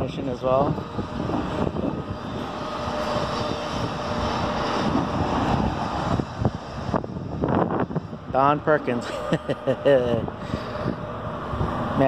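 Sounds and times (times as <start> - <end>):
distant engine rumble: 0.0 - 12.0.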